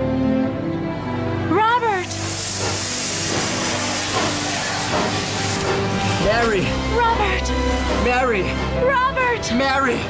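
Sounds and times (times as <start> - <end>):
background music with low notes: 0.0 - 10.0
steam train hissing: 1.8 - 8.6.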